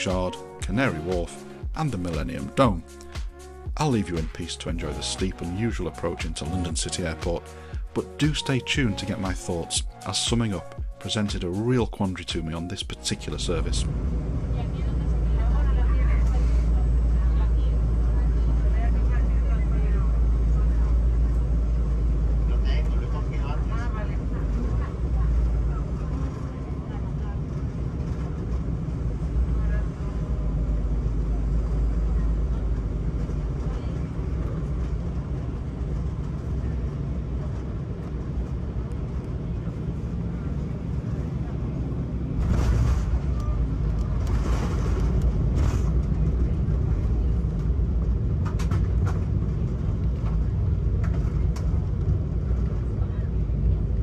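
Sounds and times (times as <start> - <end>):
jet engines and airflow rumble: 0.0 - 54.0
faint voices in cabin: 13.1 - 54.0.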